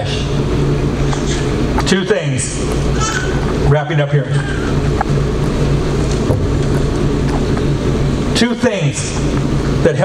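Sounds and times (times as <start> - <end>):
low hum and rumble: 0.0 - 10.0.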